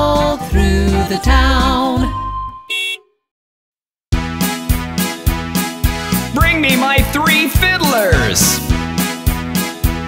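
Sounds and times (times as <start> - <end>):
children's song: 0.0 - 2.1, 6.4 - 8.6
cartoon horn toot: 2.6 - 3.2.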